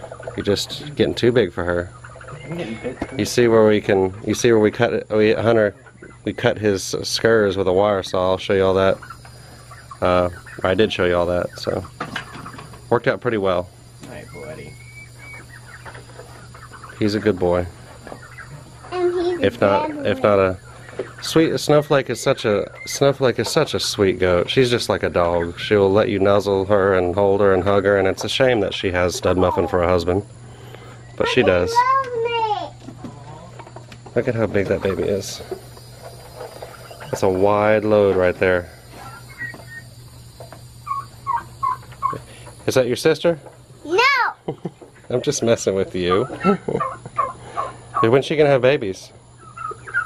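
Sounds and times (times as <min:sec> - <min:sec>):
faint steady hum: 0:00.0 - 0:50.0
poultry clucking: 0:00.0 - 0:50.0
high bird chirps: 0:14.2 - 0:17.4, 0:38.9 - 0:40.0, 0:40.8 - 0:42.3.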